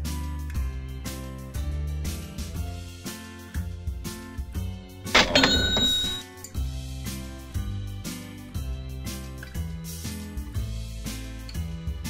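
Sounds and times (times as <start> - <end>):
cash register ka-ching: 5.2 - 6.3.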